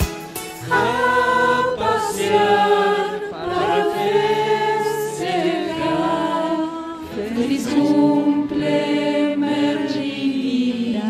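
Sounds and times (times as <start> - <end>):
mixed group singing wordlessly: 0.6 - 11.0.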